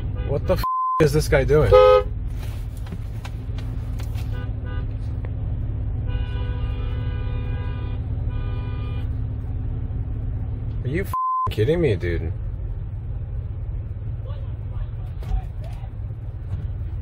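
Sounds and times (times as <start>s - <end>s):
car horn honking: 0.0s - 2.2s, 4.2s - 5.0s, 6.0s - 9.2s
idling traffic rumble: 0.0s - 17.0s.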